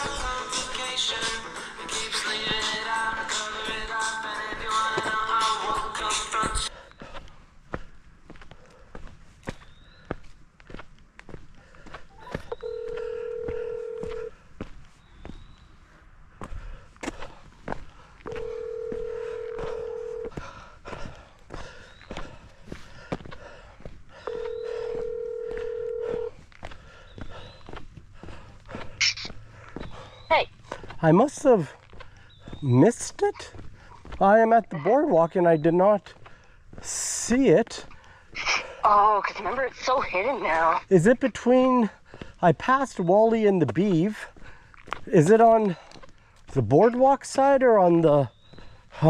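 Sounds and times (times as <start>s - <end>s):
faint footsteps: 0.0s - 49.0s
telephone ringback tone: 12.1s - 14.3s, 18.3s - 20.3s, 24.3s - 26.3s.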